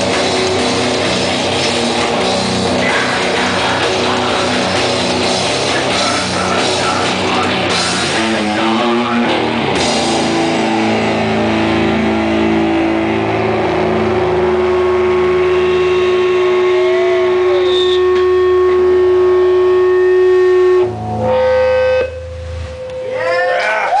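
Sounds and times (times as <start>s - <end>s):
distorted electric guitar and bass: 0.0s - 24.0s
guitar feedback: 0.0s - 24.0s
swooping pitch glides: 10.1s - 23.9s.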